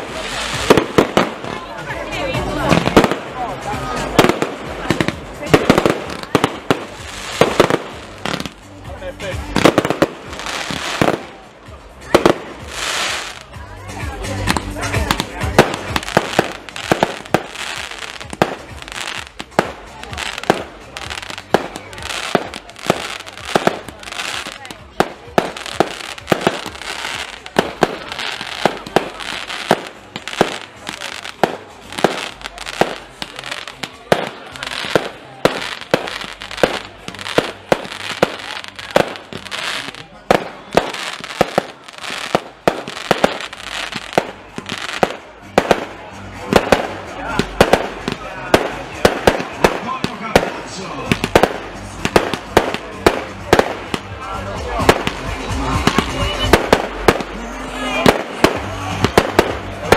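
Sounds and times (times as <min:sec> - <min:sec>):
fireworks bangs: 0:00.0 - 0:59.9.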